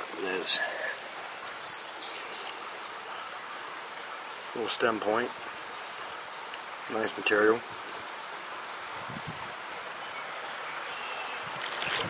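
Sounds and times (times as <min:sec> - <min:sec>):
creek water over rocks: 0:00.0 - 0:12.0
brief rustle: 0:11.6 - 0:12.0.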